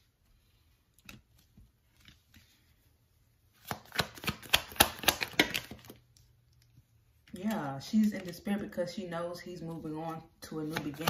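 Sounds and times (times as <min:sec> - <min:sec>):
cards being shuffled: 0:03.5 - 0:06.2, 0:07.4 - 0:08.6.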